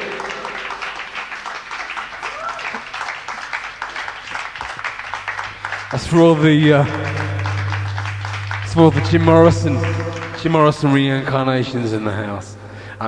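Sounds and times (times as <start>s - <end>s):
audience applauding: 0.0s - 11.2s.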